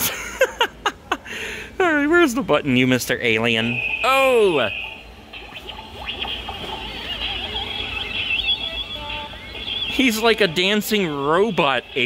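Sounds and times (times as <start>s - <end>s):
electronic alien sound effects: 3.3s - 12.0s.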